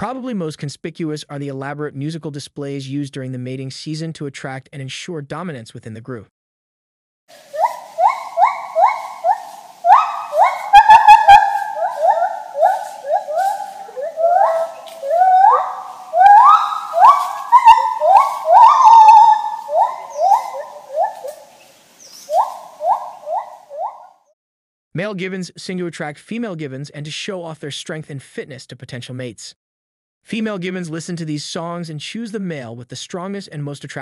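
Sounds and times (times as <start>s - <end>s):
gibbon whooping: 7.5s - 21.5s, 22.3s - 24.1s.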